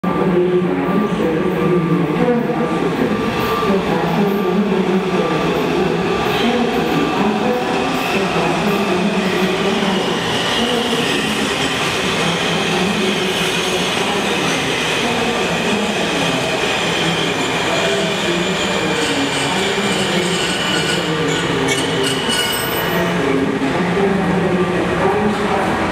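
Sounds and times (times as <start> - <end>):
subway train wheels rumbling on rail: 0.0 - 25.9.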